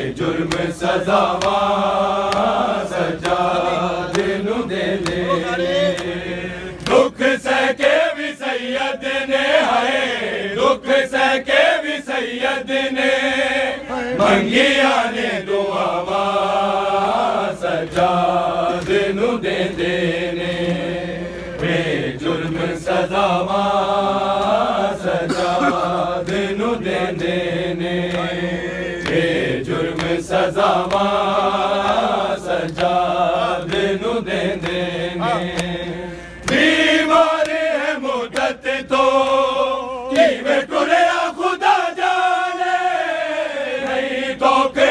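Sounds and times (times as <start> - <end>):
men chanting a lament: 0.0 - 44.9
chest-beating slaps: 0.4 - 1.7, 2.3 - 2.6, 5.0 - 6.2.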